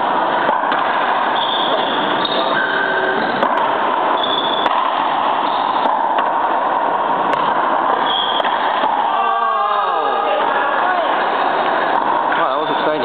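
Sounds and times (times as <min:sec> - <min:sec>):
ball popping off racquets and walls: 0:00.4 - 0:02.4, 0:03.4 - 0:09.1.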